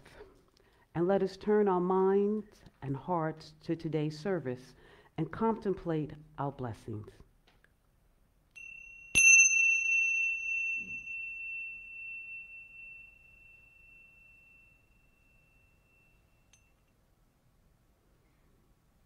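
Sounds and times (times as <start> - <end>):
tingsha cymbals ringing: 8.6 - 16.9.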